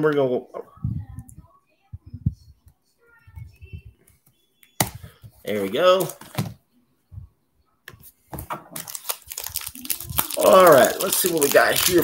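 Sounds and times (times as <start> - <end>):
foil wrapper tearing: 8.8 - 12.0.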